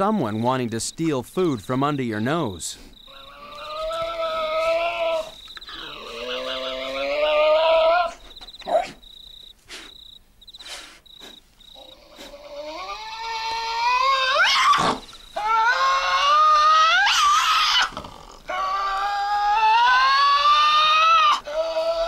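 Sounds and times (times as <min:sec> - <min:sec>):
tasmanian devils screeching: 0:02.9 - 0:09.1, 0:10.6 - 0:22.0.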